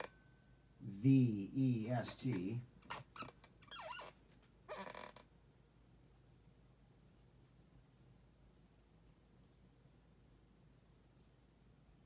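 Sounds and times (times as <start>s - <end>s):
faint room hum: 0.0s - 12.0s
desk chair creaking: 2.2s - 5.3s.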